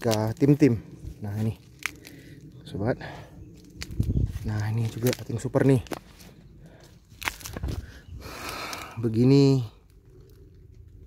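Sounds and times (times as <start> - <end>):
vegetation rustling and crackling: 0.0 - 11.0.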